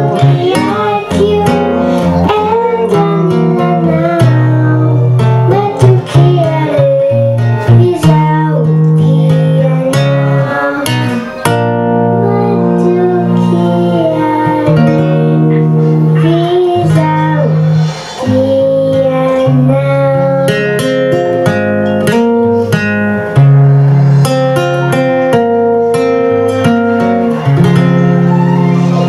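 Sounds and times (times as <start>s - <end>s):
girl singing into a microphone: 0.0s - 22.7s
acoustic guitar: 0.0s - 29.0s.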